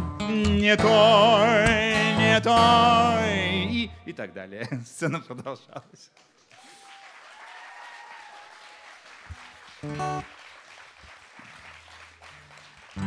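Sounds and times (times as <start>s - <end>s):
acoustic guitar chord strummed: 0.0s - 4.0s
audience applauding: 6.2s - 13.0s.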